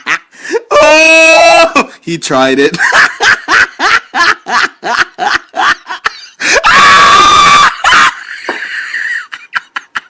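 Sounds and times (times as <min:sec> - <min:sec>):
woman screaming: 0:06.6 - 0:08.2.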